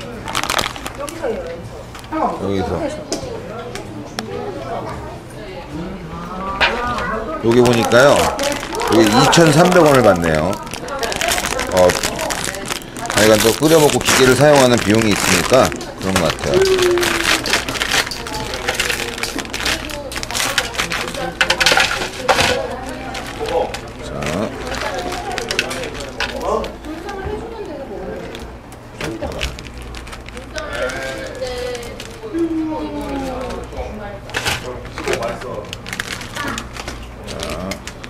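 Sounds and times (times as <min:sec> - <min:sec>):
plastic packaging crinkling: 0:00.0 - 0:02.6, 0:06.8 - 0:38.0.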